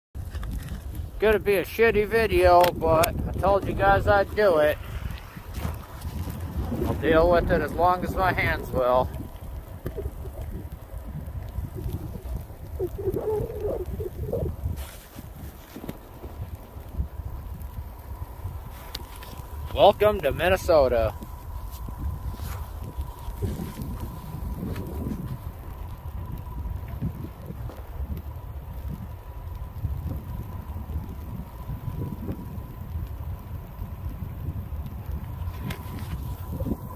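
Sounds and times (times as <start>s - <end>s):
wind buffeting microphone: 0.2s - 36.9s
short wavering hum: 9.1s - 15.2s.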